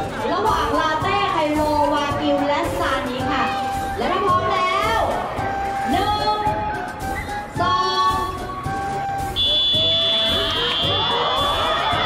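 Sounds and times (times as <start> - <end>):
music over public address: 0.0 - 12.0.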